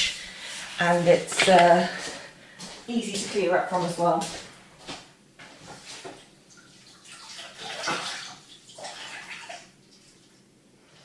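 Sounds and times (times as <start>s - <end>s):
water splashing: 5.9s - 10.3s.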